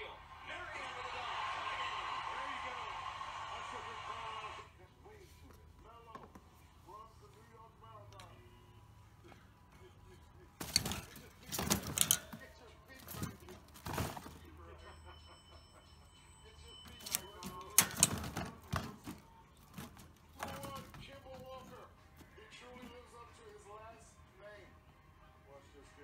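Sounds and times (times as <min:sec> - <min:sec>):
plastic ball rattling against cage bars: 0:10.6 - 0:14.6, 0:16.8 - 0:23.0.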